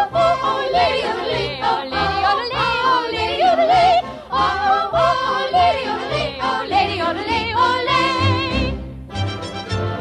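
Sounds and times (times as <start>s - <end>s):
yodeling singing: 0.0s - 8.7s.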